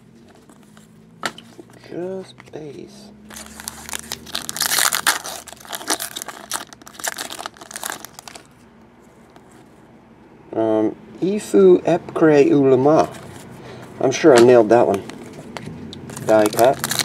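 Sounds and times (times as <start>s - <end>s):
foil wrapper tearing and crinkling: 3.3s - 8.5s, 16.1s - 17.0s.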